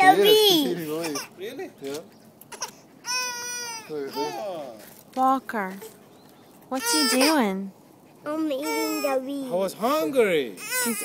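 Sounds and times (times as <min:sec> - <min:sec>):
child whining: 0:02.5 - 0:04.6, 0:06.7 - 0:07.6, 0:08.3 - 0:09.7, 0:10.6 - 0:11.0.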